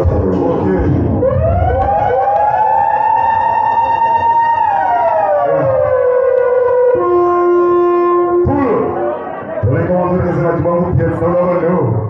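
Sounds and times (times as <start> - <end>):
siren sound effect: 0.7 - 9.6.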